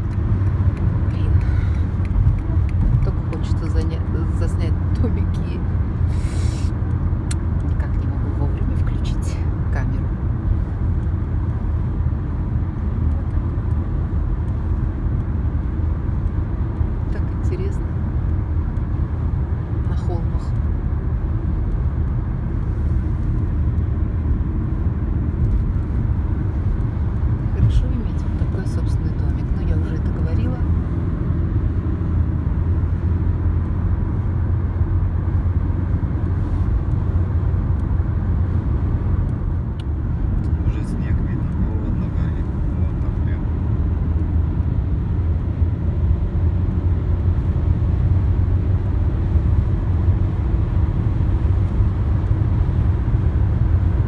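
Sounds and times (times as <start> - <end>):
tyres and engine rumble in car: 0.0 - 54.0.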